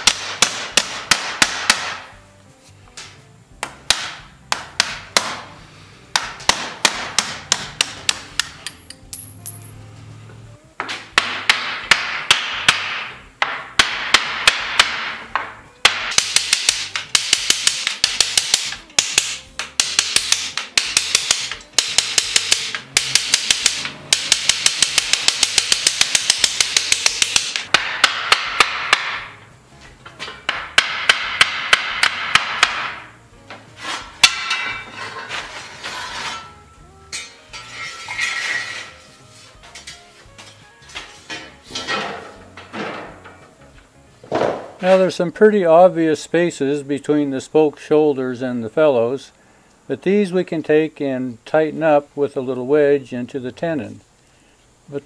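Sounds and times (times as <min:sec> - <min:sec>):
hammer striking steel wheel tire: 0:00.0 - 0:02.2, 0:03.0 - 0:09.7, 0:10.8 - 0:29.4, 0:30.2 - 0:33.2, 0:33.8 - 0:36.5.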